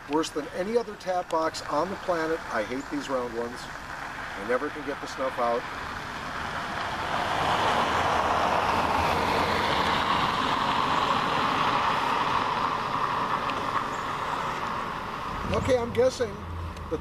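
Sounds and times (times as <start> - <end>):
vehicle passing by: 2.2 - 17.0.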